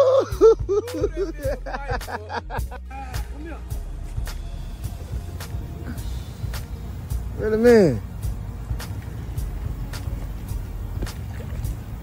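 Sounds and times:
footsteps on dirt: 3.6 - 7.4, 8.0 - 12.0.

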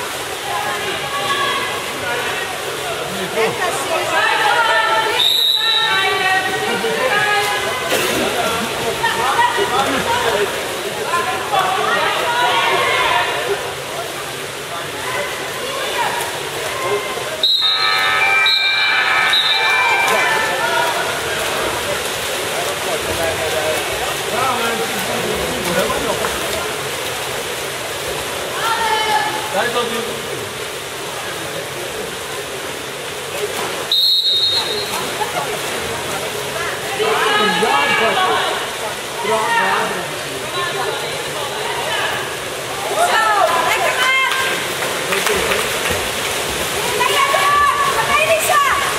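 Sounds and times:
voices calling out and chatting: 0.0 - 48.9
water splashing: 0.0 - 48.9.

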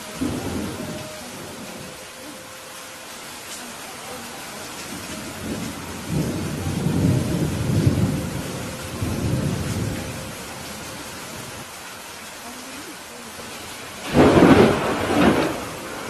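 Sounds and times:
steady rain: 0.0 - 16.0
rolling thunder: 0.1 - 2.1, 4.8 - 11.7, 13.9 - 16.0.

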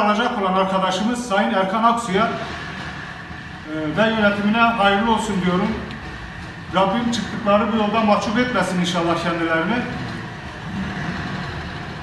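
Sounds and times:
steady background hiss and rumble: 0.0 - 12.0.

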